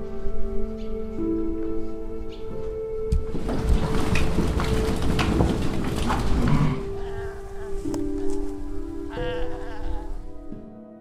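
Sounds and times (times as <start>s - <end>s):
background music with held notes: 0.0s - 11.0s
animals shuffling and knocking: 1.6s - 10.2s
cow mooing: 4.1s - 10.4s.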